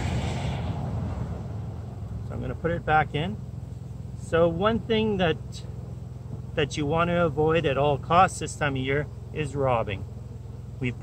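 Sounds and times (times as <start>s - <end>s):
hiss: 0.0s - 1.6s
low rumble: 0.0s - 4.4s.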